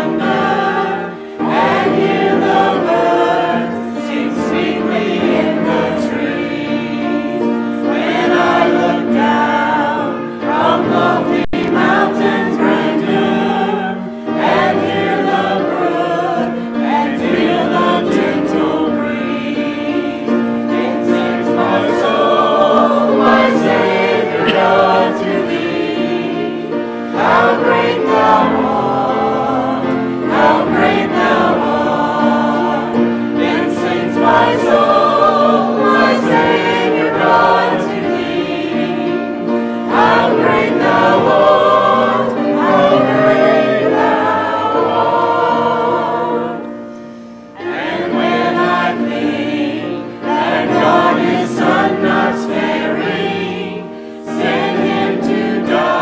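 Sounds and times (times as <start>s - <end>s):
congregation and choir singing hymn: 0.0s - 56.0s.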